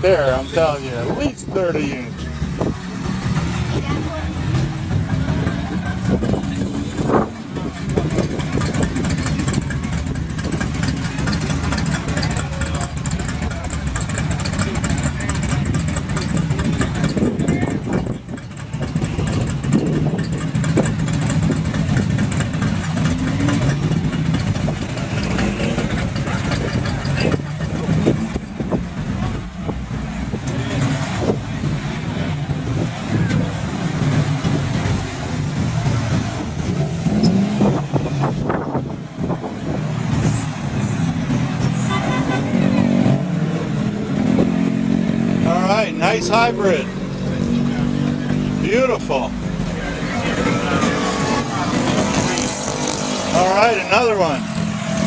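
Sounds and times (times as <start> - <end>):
street traffic passing: 0.0 - 55.0.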